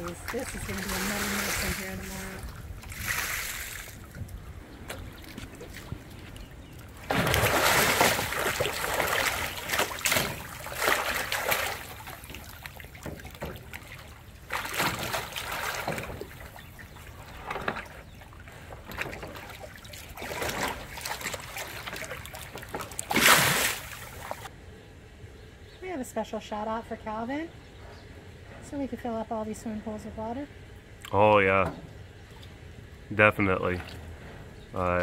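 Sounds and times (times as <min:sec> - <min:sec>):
tiger splashing in water tank: 0:00.0 - 0:24.5.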